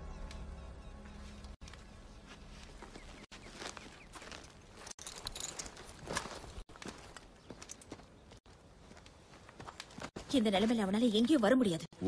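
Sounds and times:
faint footsteps: 1.0s - 10.8s.

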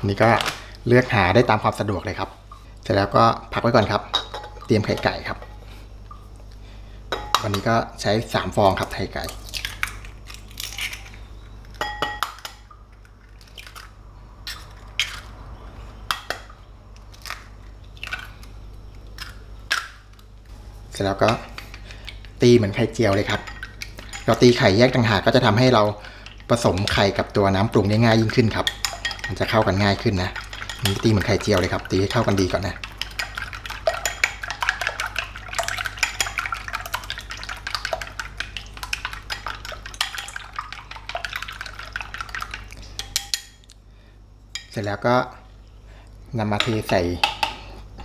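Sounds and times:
eggshells cracking: 9.3s - 15.3s
chopsticks whisking eggs in bowl: 22.5s - 43.5s.

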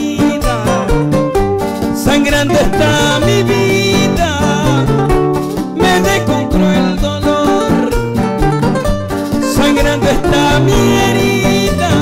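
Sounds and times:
acoustic guitars playing: 0.0s - 12.0s.

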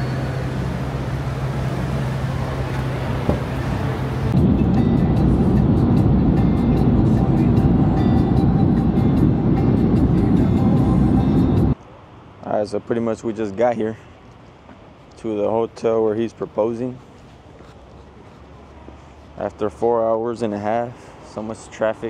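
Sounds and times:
road noise inside van: 0.0s - 12.6s, 13.4s - 22.0s
steady low hum: 0.0s - 19.4s.

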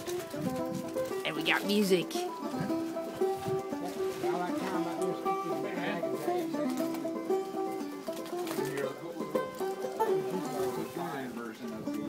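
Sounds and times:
plucked string instrument tune: 0.0s - 12.0s.

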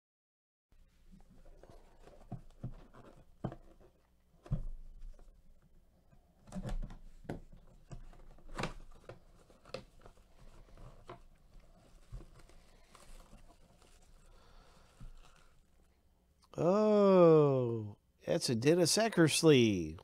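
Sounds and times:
plastic wrap crinkling: 8.0s - 16.0s.

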